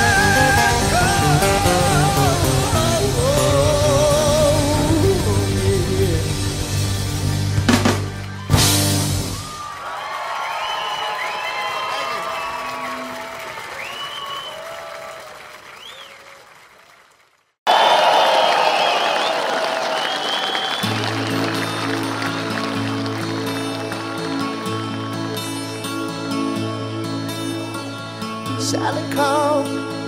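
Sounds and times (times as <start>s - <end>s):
audience noise: 0.0s - 5.0s, 6.4s - 28.4s
crowd cheering and applause: 0.0s - 5.3s, 7.1s - 28.0s
steady bass line: 0.0s - 9.4s
live music: 0.0s - 9.8s, 19.5s - 30.0s.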